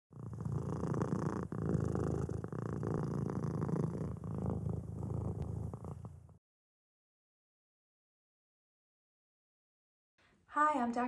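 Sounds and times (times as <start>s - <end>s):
cat purring: 0.1s - 6.4s.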